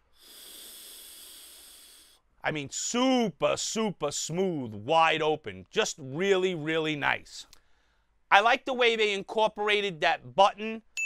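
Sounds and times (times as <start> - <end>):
air hissing through vape: 0.1 - 2.2.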